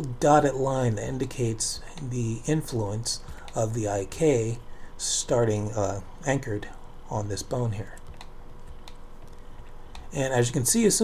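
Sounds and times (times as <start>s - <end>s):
faint room hum: 0.0s - 11.0s
computer key and mouse clicks: 7.9s - 10.1s.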